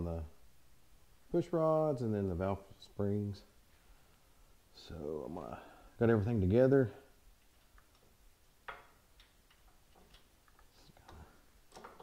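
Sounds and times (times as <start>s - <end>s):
metal parts clicking and tapping: 7.4s - 12.0s.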